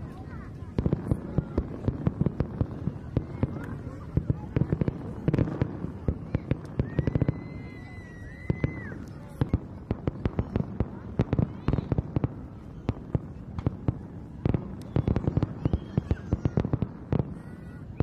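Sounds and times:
fireworks bangs and crackles: 0.0 - 18.0.

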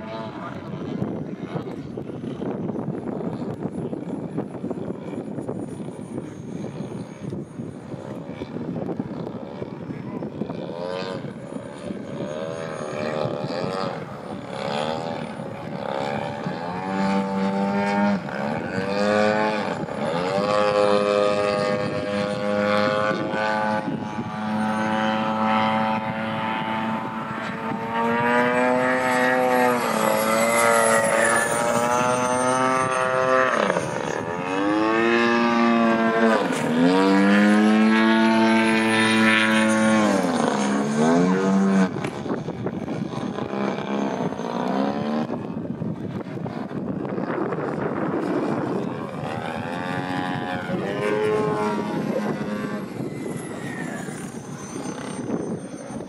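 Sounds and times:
model airplane motor and propeller: 0.0 - 56.0.

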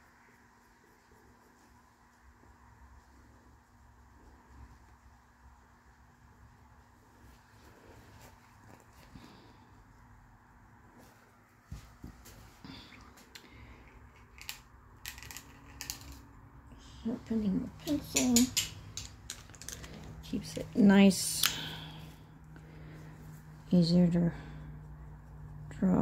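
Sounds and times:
faint low hum: 0.0 - 26.0
pencils clicking on table: 13.3 - 16.3, 17.8 - 20.2.

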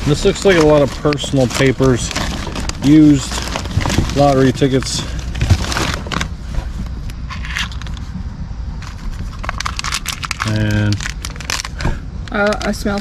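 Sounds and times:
papers rustling and crinkling: 0.0 - 8.1, 8.8 - 13.0.

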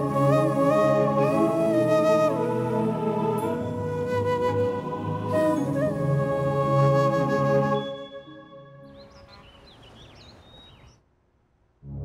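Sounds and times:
background music with bass and flute: 0.0 - 9.2
birds chirping: 8.8 - 11.0.

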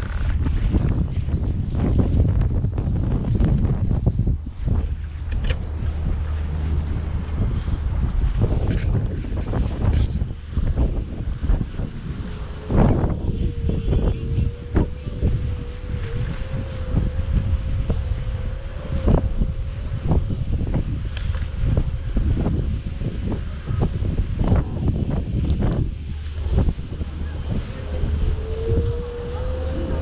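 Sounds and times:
faint steady whine: 0.0 - 30.0
wind buffeting microphone: 0.0 - 30.0.

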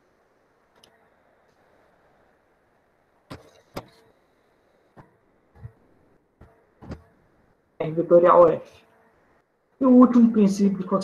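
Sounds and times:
computer mouse clicks: 0.7 - 1.6.

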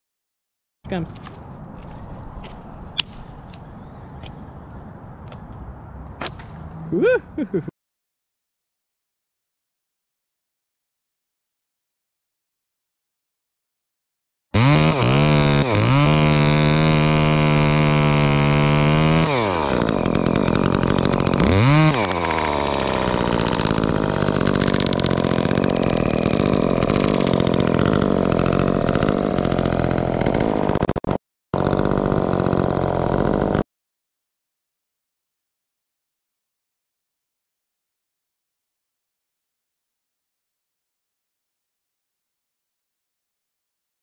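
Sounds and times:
chainsaw cutting wood: 14.6 - 33.7.

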